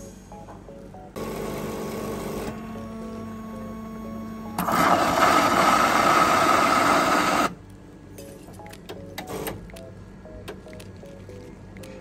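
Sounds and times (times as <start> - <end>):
quiet background music: 0.0 - 12.0
coffee machine buzzing hiss: 1.2 - 7.6.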